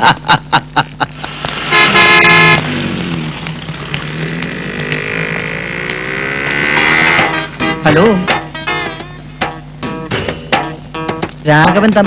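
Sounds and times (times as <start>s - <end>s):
vehicle engine running: 1.0s - 12.0s
vehicle horn honking: 1.7s - 2.7s.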